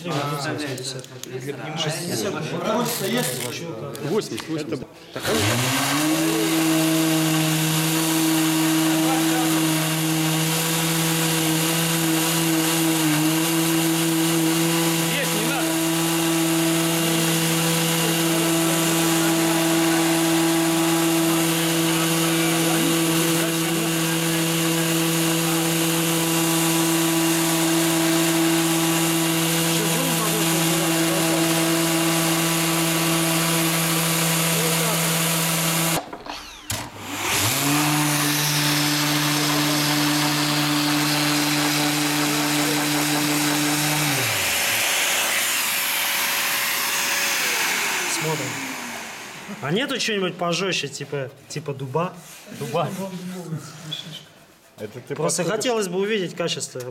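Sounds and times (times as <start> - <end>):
orbital sander sanding wood: 5.2 - 50.4.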